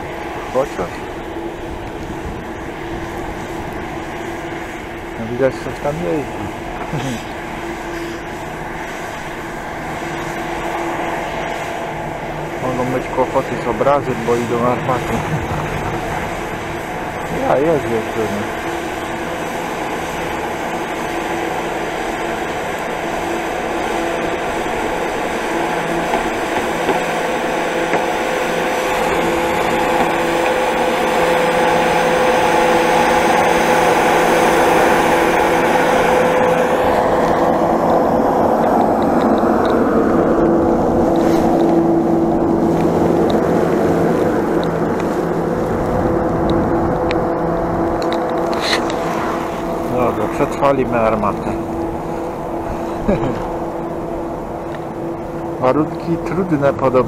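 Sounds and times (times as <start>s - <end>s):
snowmaking cannon whirring: 0.0s - 57.0s.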